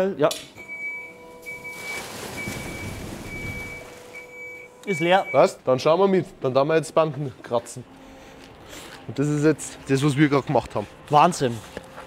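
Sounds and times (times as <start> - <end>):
high repeated warning beeps: 0.6 - 5.6.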